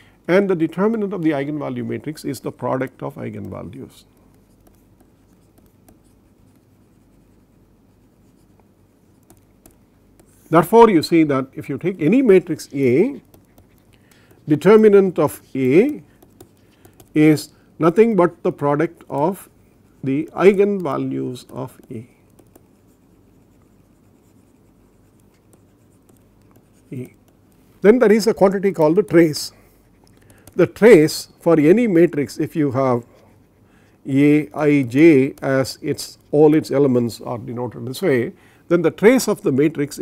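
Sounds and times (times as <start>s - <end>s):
low steady hum: 0.0s - 40.0s
stylus tapping and scratching: 0.5s - 38.1s.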